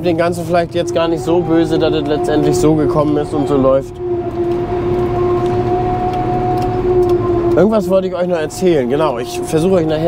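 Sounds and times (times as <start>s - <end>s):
forage harvester whining: 0.0s - 10.0s
low mechanical rumble: 0.0s - 10.0s.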